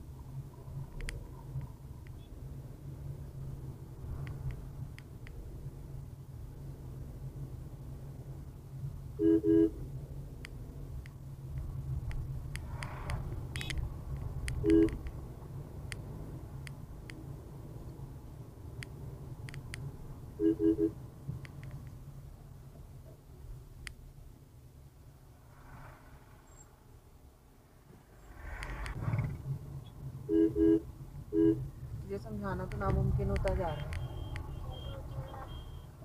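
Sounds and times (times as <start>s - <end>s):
car engine and tyres rumbling: 0.0s - 36.0s
light clicks: 1.0s - 2.2s, 32.6s - 34.5s
car horn beeps: 9.2s - 9.8s, 13.6s - 13.8s, 14.6s - 15.0s, 20.4s - 21.0s, 30.3s - 31.7s, 33.6s - 36.0s
passing vehicle whoosh: 11.7s - 16.6s, 25.1s - 30.7s.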